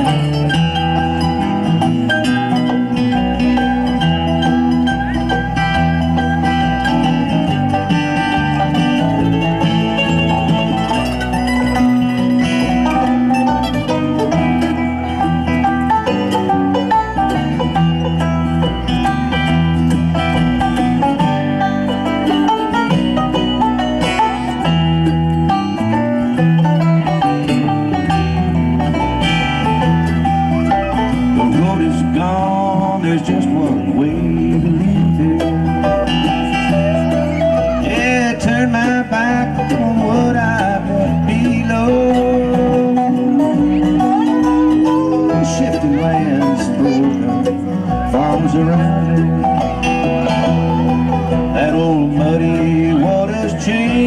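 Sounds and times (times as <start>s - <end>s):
bluegrass band playing: 0.0s - 54.0s.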